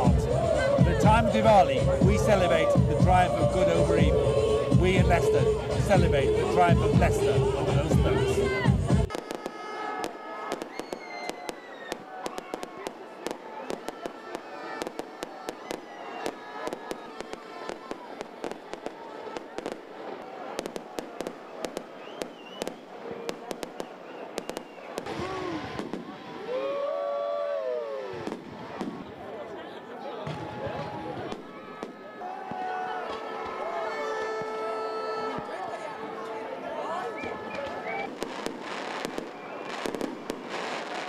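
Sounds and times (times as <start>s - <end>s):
crowd noise: 0.0s - 41.0s
fireworks cracking and popping: 9.0s - 26.7s, 28.1s - 29.2s, 30.3s - 33.6s, 37.2s - 41.0s.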